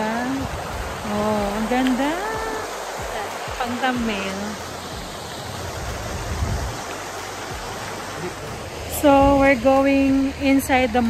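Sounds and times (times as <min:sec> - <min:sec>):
microphone rumbles: 0:00.0 - 0:04.2, 0:05.7 - 0:06.9
fountain water splashing: 0:00.0 - 0:11.0.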